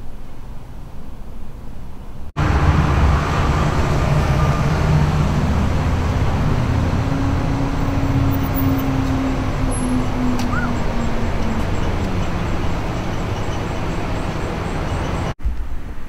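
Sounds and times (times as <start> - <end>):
road traffic rumble: 0.0 - 16.0.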